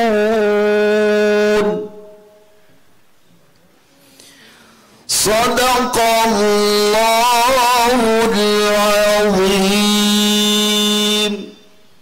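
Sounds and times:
man reciting melodically into microphone: 0:00.0 - 0:02.2, 0:05.0 - 0:11.9.

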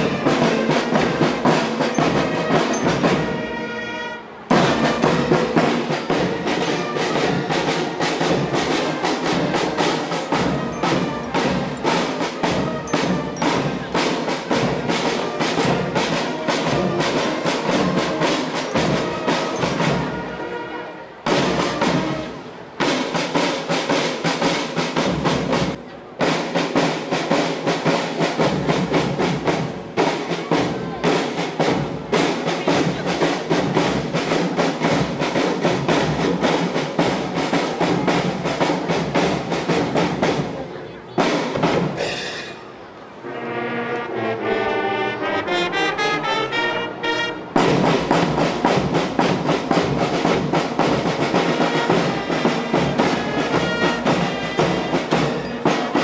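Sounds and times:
trumpets sustained notes: 0:00.0 - 0:11.4, 0:15.0 - 0:22.5, 0:43.2 - 0:48.2, 0:51.5 - 0:56.0
marching drum cadence: 0:00.0 - 0:56.0.

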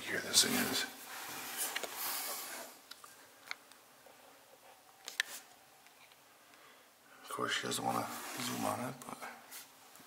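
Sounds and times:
camera handling rustle: 0:05.0 - 0:06.2.

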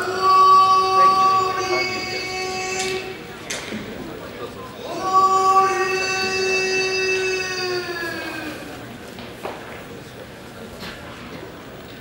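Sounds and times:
man's long chanted call: 0:00.0 - 0:03.3, 0:04.8 - 0:08.8.

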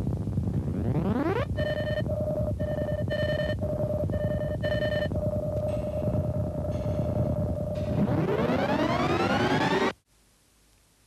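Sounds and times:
synthesizer pitch glide and tone: 0:05.7 - 0:10.0.

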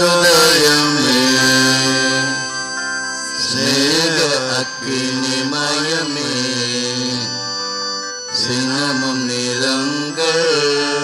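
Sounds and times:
man chanting a hymn: 0:00.0 - 0:02.6, 0:03.4 - 0:07.6, 0:08.3 - 0:11.0
sustained instrumental accompaniment: 0:00.0 - 0:11.0.

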